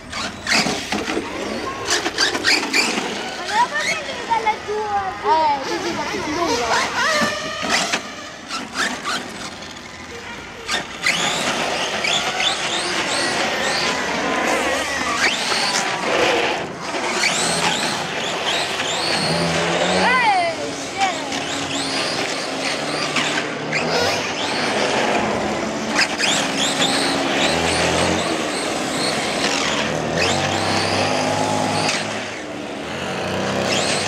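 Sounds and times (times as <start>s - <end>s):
rc car motor revving: 0.0s - 34.0s
voices: 0.0s - 34.0s.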